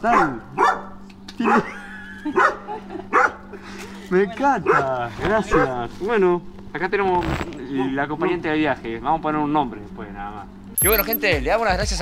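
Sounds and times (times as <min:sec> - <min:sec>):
dog barking: 0:00.0 - 0:01.8, 0:02.4 - 0:03.5, 0:04.6 - 0:05.8.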